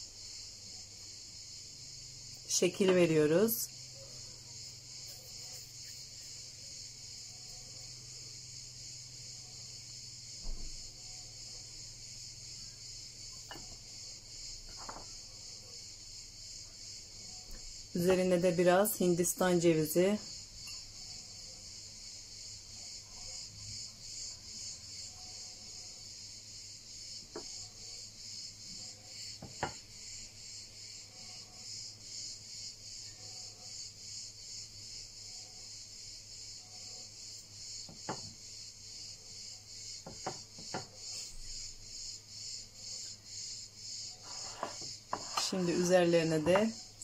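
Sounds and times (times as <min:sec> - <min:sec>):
crickets chirping: 0:00.0 - 0:47.0.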